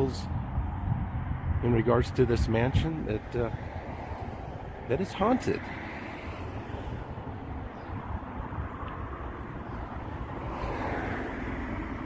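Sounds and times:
road traffic rumble: 0.0s - 12.0s
vehicle passing: 2.9s - 12.0s.

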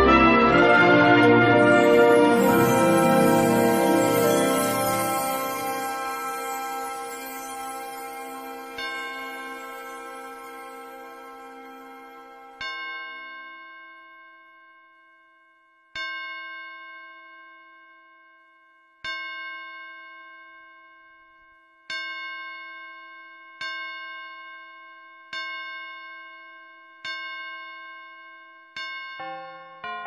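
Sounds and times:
bell-like chime ringing: 0.0s - 13.8s, 28.8s - 30.0s.

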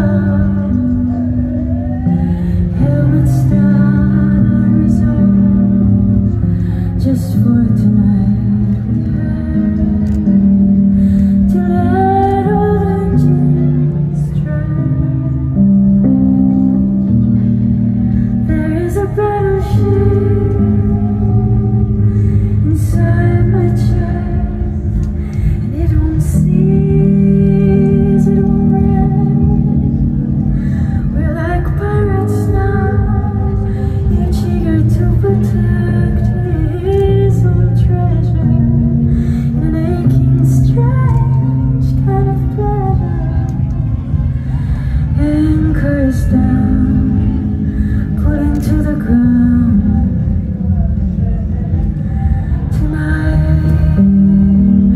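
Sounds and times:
woman singing: 0.0s - 17.2s, 18.0s - 54.9s
electronic keyboard chords: 0.0s - 54.9s.

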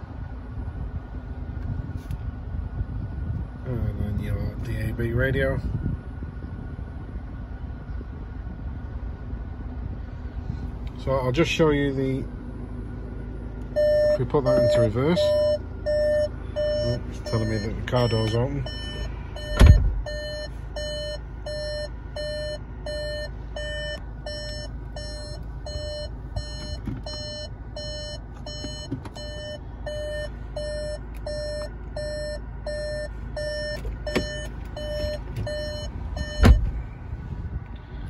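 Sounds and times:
short electronic beeps: 13.8s - 36.6s
heavy thump: 19.5s - 20.1s, 36.2s - 36.9s.

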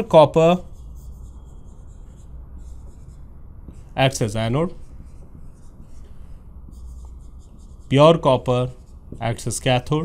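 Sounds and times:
marker writing on whiteboard: 0.0s - 10.0s
steady low hum: 0.0s - 10.0s.

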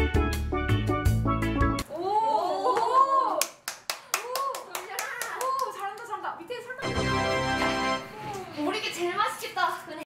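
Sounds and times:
hands clapping: 2.8s - 6.2s, 7.5s - 8.0s
excited women's voices: 4.2s - 6.8s.

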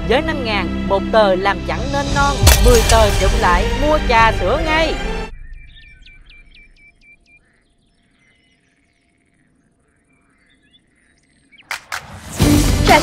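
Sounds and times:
small birds chirping: 4.2s - 12.0s.

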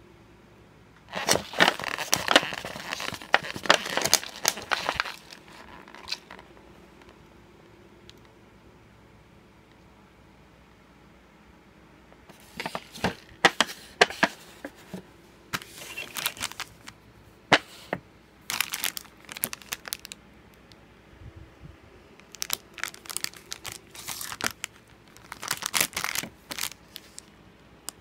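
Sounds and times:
foil sachet crinkling: 1.1s - 6.5s, 15.6s - 17.0s, 18.4s - 20.2s, 22.2s - 27.3s
plastic packaging crackling: 1.1s - 6.6s, 12.3s - 15.0s, 15.6s - 17.0s, 17.6s - 20.2s, 22.2s - 28.0s.

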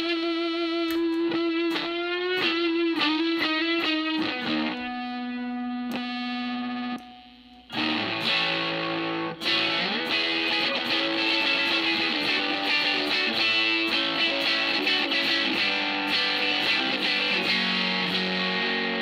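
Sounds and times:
fuzz electric guitar: 0.0s - 19.0s.

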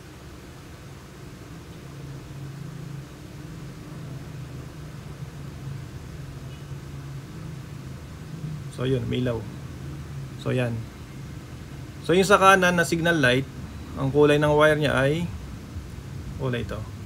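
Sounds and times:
faint hiss: 0.0s - 17.0s
low machine hum: 0.0s - 17.0s.

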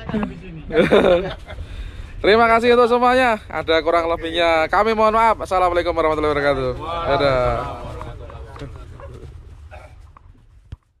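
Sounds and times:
low background rumble: 0.0s - 10.8s.

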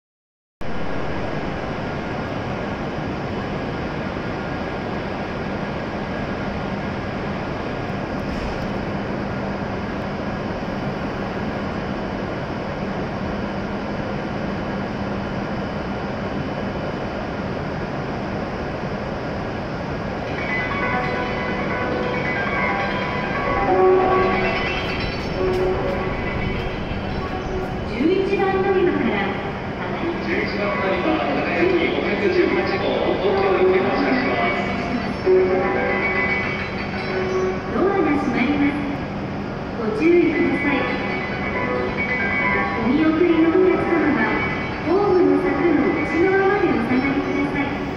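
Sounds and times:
train humming and hissing: 0.6s - 47.9s
public address announcement: 20.2s - 47.9s
musical chime tones: 20.4s - 27.8s.

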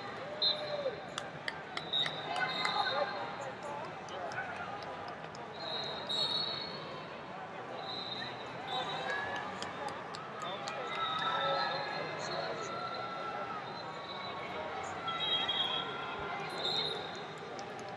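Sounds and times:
referee whistle blasts: 0.4s - 0.8s, 5.6s - 6.8s, 15.1s - 17.2s.

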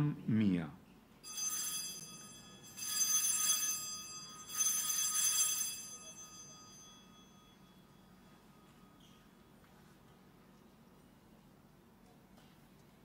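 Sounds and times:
altar bells ringing: 1.2s - 9.4s.

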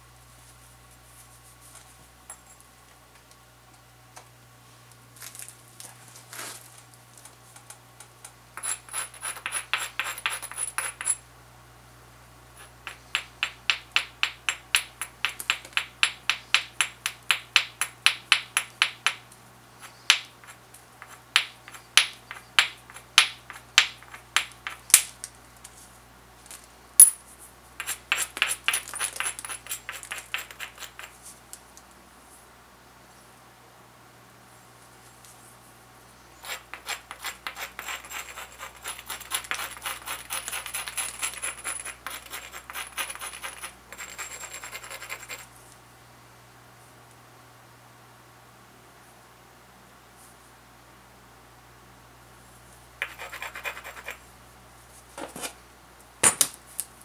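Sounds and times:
stone scraping obsidian edge: 8.6s - 11.2s, 19.8s - 24.9s, 27.8s - 31.1s, 36.4s - 45.5s, 53.0s - 54.2s.

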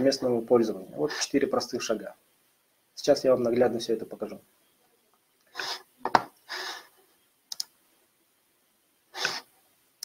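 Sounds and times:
computer mouse clicks: 7.5s - 7.8s.

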